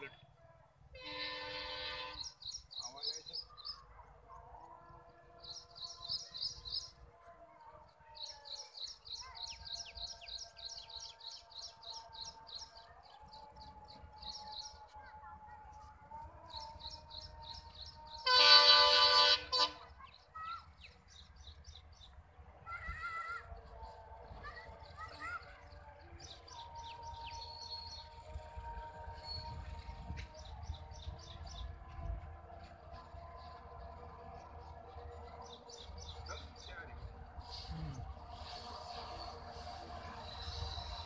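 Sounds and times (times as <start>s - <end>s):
diesel locomotive horn: 0.9s - 2.4s, 18.1s - 20.0s.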